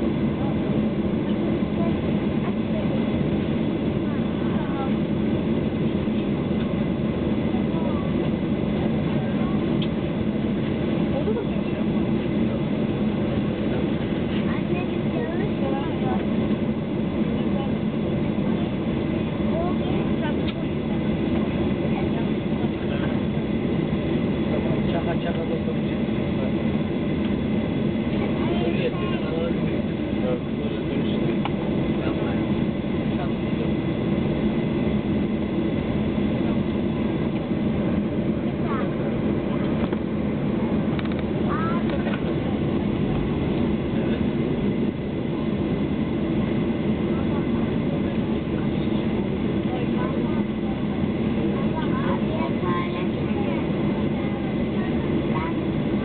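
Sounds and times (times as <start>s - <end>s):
airliner engine drone in cabin: 0.0s - 56.0s.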